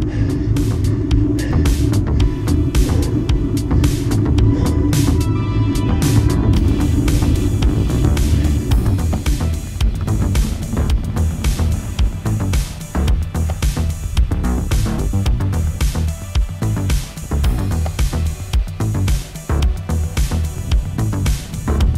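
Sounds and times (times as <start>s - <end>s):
wind rumble on camera: 0.0s - 15.8s
background music with steady beat: 0.0s - 21.9s.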